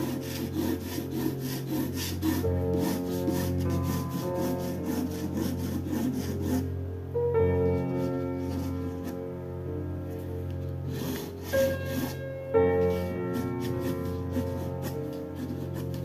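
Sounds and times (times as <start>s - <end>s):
pencil scratching on paper: 0.0s - 6.7s, 7.8s - 9.3s, 10.8s - 16.0s
soft piano music: 0.0s - 16.0s.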